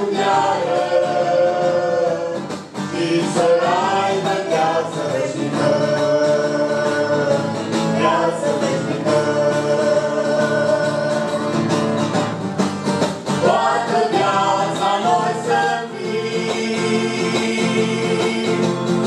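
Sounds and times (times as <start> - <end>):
group singing a hymn: 0.0 - 12.4, 13.3 - 19.0
instrumental accompaniment: 0.0 - 19.0.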